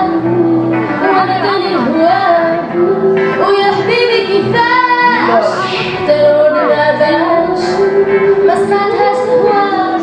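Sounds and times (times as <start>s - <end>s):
live band playing: 0.0s - 10.0s
woman singing: 0.0s - 10.0s.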